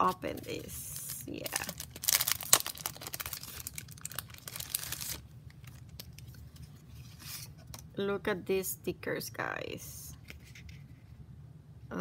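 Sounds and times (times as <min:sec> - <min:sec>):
plastic packaging tearing and crinkling: 0:00.9 - 0:06.4.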